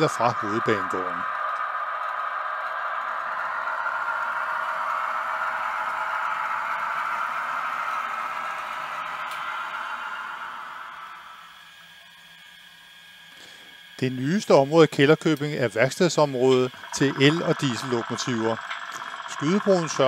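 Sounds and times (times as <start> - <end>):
model train whirring rumble: 0.0 - 20.0.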